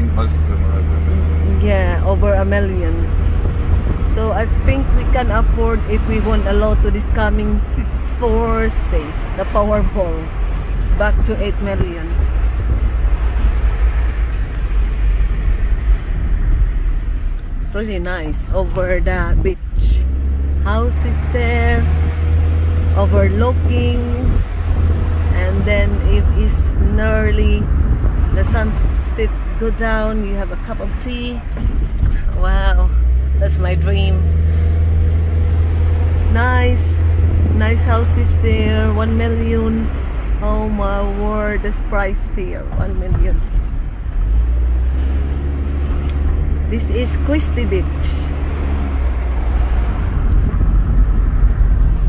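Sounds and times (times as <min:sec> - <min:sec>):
car road noise low rumble: 0:00.0 - 0:52.0.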